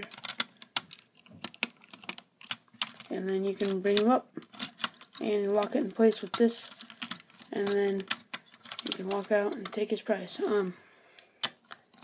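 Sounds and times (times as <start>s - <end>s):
plastic toy bricks clicking: 0.0s - 10.5s, 11.2s - 12.0s.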